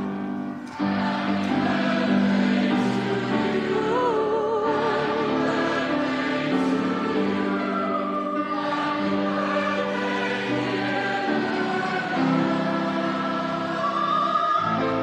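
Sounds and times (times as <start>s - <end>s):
choir singing in harmony: 0.0s - 15.0s.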